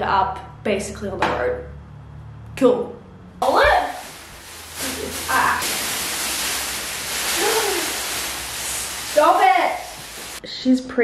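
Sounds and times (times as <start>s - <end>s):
woman's voice: 2.6s - 4.1s, 4.8s - 5.6s, 7.4s - 8.0s, 8.8s - 11.0s
plastic wrapping rustling and crinkling: 3.4s - 10.4s.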